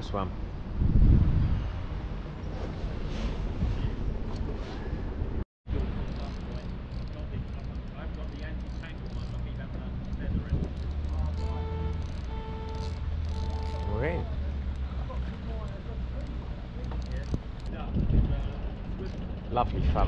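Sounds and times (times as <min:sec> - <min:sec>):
wind and water rumble: 0:00.0 - 0:20.0.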